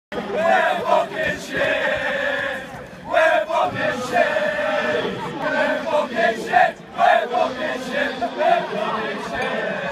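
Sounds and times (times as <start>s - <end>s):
men chanting together: 0.3s - 9.9s.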